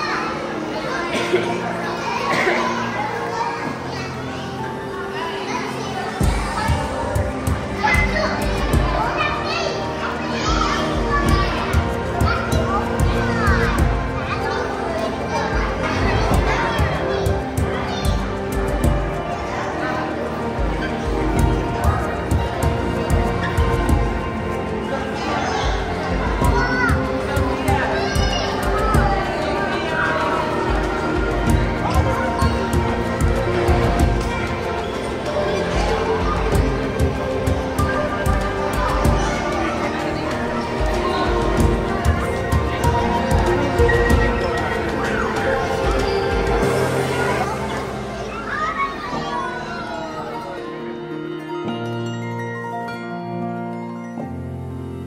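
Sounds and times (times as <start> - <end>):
children's voices: 0.0 - 55.0
crowd chatter: 0.0 - 55.0
low drum beat: 6.2 - 9.1, 25.7 - 29.4, 30.7 - 34.6, 35.7 - 39.7, 40.8 - 45.0
background music with low beat: 6.2 - 48.6.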